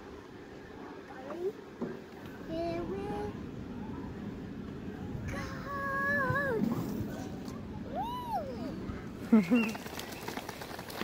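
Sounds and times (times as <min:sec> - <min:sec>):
child's high-pitched ooh: 0:07.9 - 0:08.8
child's rising-and-falling call: 0:07.9 - 0:08.8.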